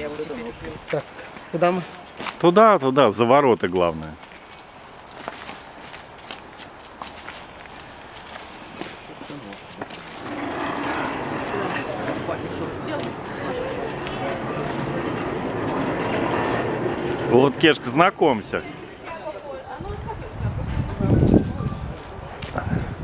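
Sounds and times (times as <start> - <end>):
footsteps on wet ground: 0.0 - 18.8, 21.5 - 22.9
murmur of distant voices: 8.8 - 23.0.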